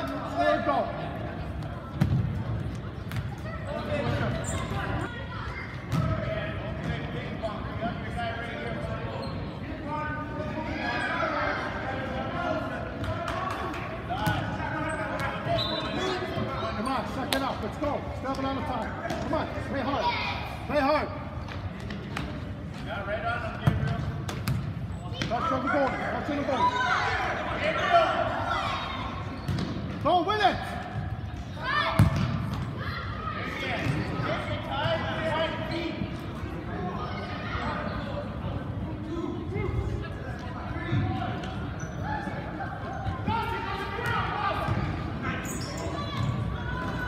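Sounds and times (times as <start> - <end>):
shouting voices echoing in hall: 40.5 - 47.0.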